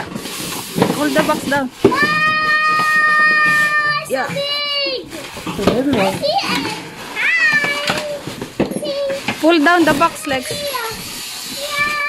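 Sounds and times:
plastic wrap crackling: 0.0s - 12.0s
child squealing: 1.9s - 5.2s, 6.2s - 9.3s, 10.3s - 12.0s.

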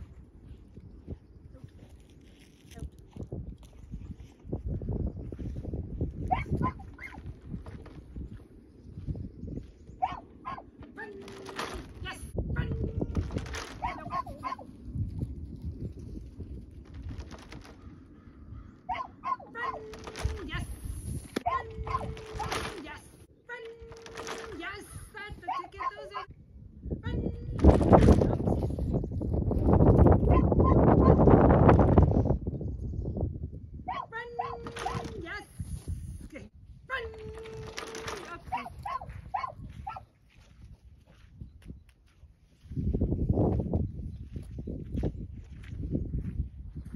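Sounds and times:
dog barking high-pitched: 6.3s - 7.2s, 10.0s - 10.7s, 13.8s - 14.6s, 18.9s - 20.0s, 21.4s - 22.6s, 24.9s - 26.3s, 30.3s - 31.2s, 33.9s - 35.2s, 38.5s - 40.1s.

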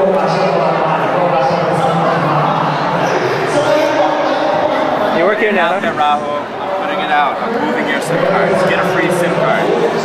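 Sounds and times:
background hubbub: 0.0s - 10.0s.

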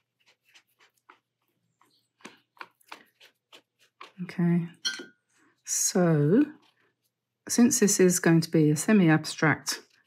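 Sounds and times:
brush dabbing paint on paper: 0.0s - 2.4s, 6.1s - 7.7s.

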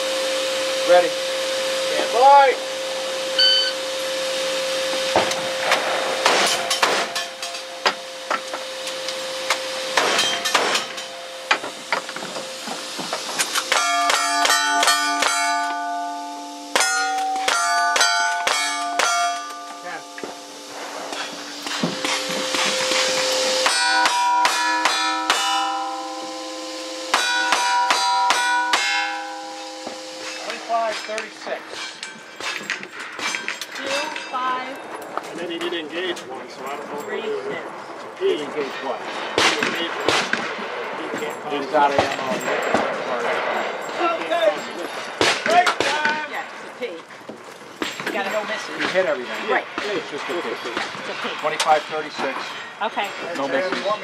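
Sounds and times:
steel targets ringing: 0.5s - 34.9s, 38.6s - 46.5s.

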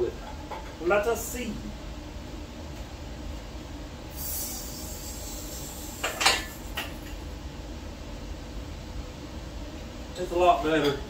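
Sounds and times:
hydraulic hiss: 4.1s - 7.2s.

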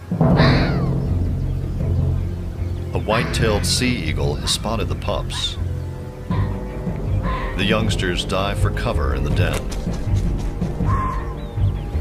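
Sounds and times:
music with low sustained notes: 0.0s - 12.0s.

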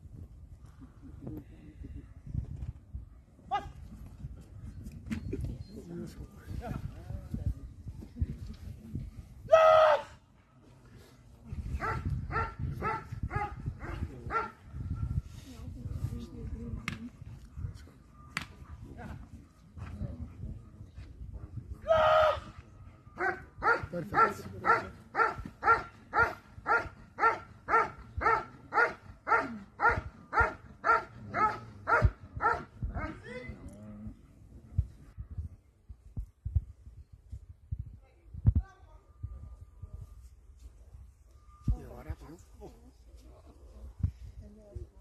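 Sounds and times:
dog barking: 11.8s - 13.6s, 14.3s - 14.5s, 23.2s - 33.2s.

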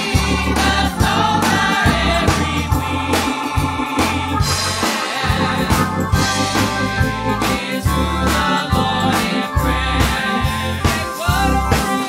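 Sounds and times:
drum hits: 0.0s - 10.2s
bass notes: 0.0s - 12.0s
gospel singers: 0.0s - 12.0s
live band: 0.0s - 12.0s.

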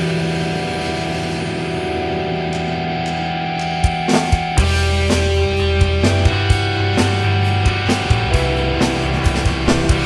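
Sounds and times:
distorted electric guitar chord ringing: 0.0s - 10.0s.

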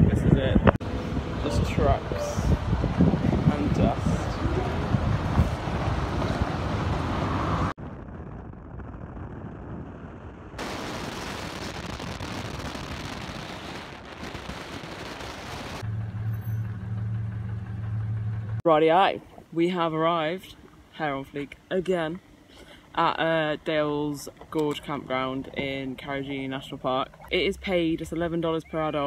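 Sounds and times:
road and wind noise: 0.0s - 19.6s, 20.2s - 29.0s
low engine drone: 15.8s - 18.6s
vehicle driving by on dirt: 15.8s - 18.6s.

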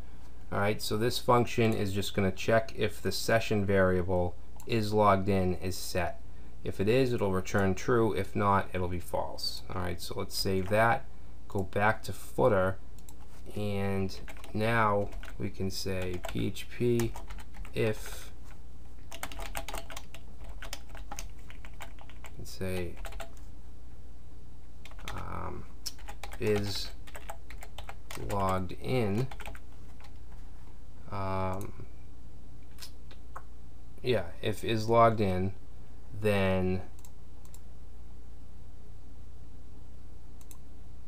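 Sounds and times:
steady low hum: 0.0s - 41.0s
keyboard typing: 14.2s - 16.4s, 17.0s - 17.9s, 19.1s - 23.5s, 24.8s - 30.2s.

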